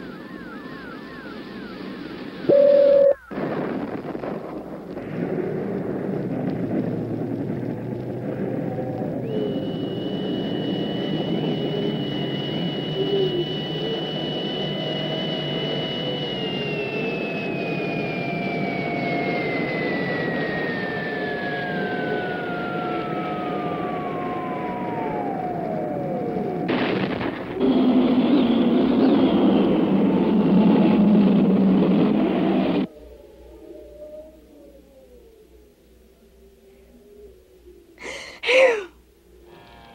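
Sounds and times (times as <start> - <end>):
high whistle gliding down: 0.0 - 3.4, 8.5 - 26.8, 32.0 - 35.7
rocket engine roar: 0.0 - 32.9.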